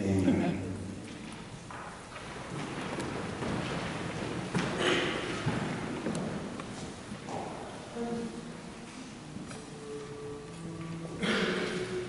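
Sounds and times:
people rustling and shuffling: 0:00.0 - 0:12.0.

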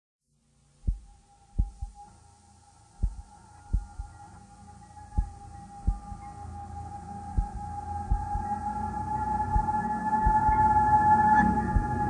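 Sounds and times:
steady low hum: 0:00.7 - 0:12.0
deep thumps: 0:00.8 - 0:02.0, 0:03.0 - 0:04.2, 0:05.1 - 0:06.2, 0:07.3 - 0:08.5, 0:09.5 - 0:10.6.

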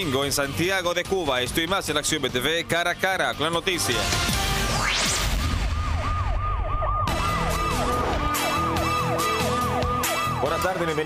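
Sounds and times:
siren-like wail: 0:04.7 - 0:11.0
music beat: 0:07.1 - 0:10.5.

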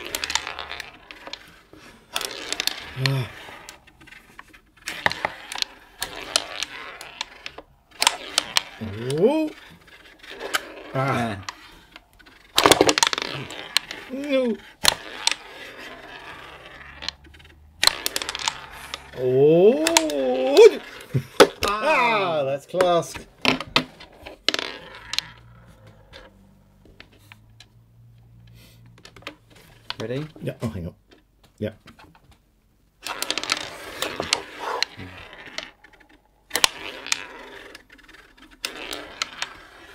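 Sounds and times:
game pieces clicking on wooden board: 0:00.0 - 0:31.2, 0:33.0 - 0:39.9.

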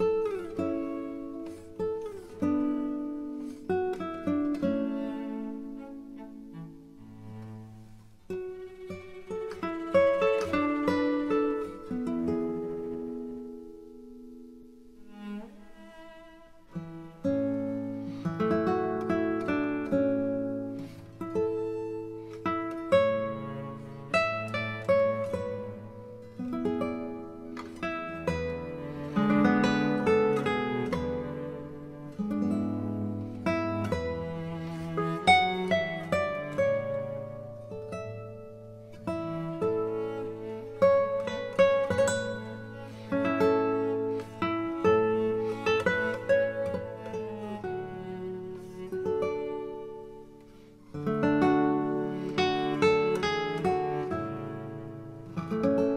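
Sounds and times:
string instrument music: 0:00.0 - 0:55.9.

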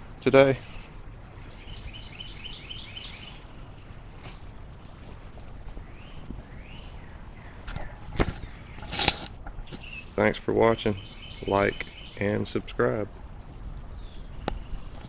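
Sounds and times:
outdoor background hiss: 0:00.0 - 0:15.0
small birds chirping: 0:00.0 - 0:15.0.

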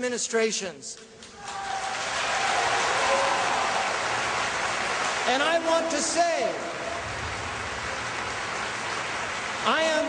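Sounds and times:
large audience applauding: 0:01.3 - 0:10.0.

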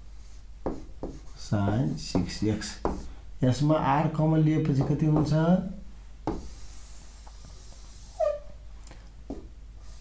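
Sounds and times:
pen writing on a whiteboard: 0:00.2 - 0:03.1, 0:04.5 - 0:05.4, 0:06.2 - 0:08.4.

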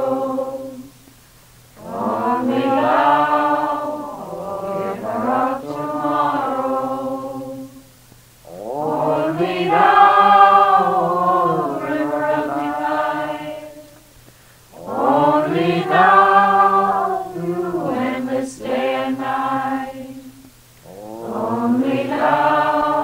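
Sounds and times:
slow devotional chant: 0:00.0 - 0:23.0.

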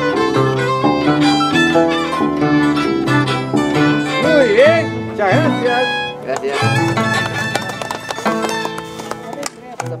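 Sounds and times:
harp playing: 0:00.0 - 0:09.1
violin playing: 0:00.0 - 0:09.6.

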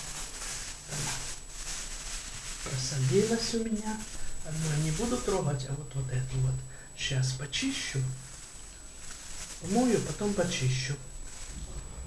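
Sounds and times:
background hiss: 0:00.0 - 0:12.0
plastic bags rustling: 0:00.0 - 0:12.0.

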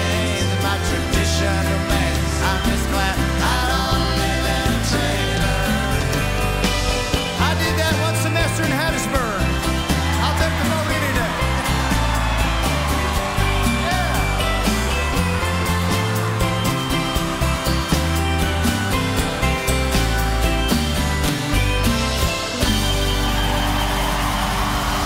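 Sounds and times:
strummed twelve-string guitar: 0:00.0 - 0:24.9
crowd cheering: 0:00.0 - 0:25.0
live country-rock band: 0:00.0 - 0:25.0.

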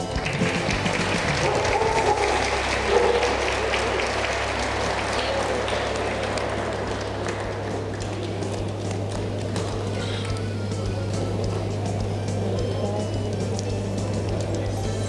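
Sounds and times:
audience applauding: 0:00.0 - 0:15.0
steady low hum: 0:00.0 - 0:15.0.

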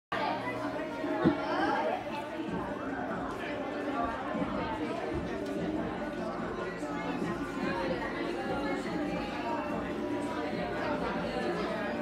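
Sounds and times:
people chattering: 0:00.1 - 0:12.0.

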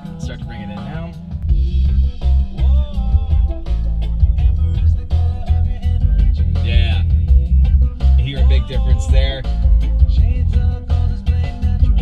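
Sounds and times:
heavy subwoofer bass: 0:00.0 - 0:12.0
rock song through car stereo: 0:00.0 - 0:12.0.

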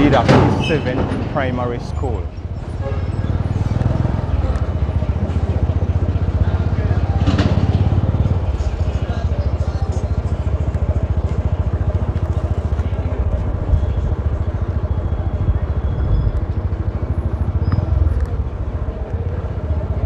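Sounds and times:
small motorcycle engine running: 0:03.2 - 0:20.0.

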